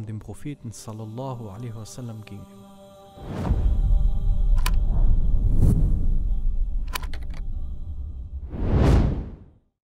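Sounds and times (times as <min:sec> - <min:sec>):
cinematic whoosh: 0:03.2 - 0:07.0, 0:07.6 - 0:09.6
low rumble: 0:03.3 - 0:09.5.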